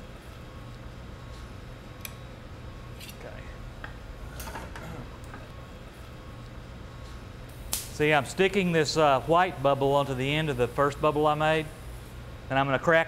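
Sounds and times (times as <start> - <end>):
equipment hum: 0.0 - 13.0.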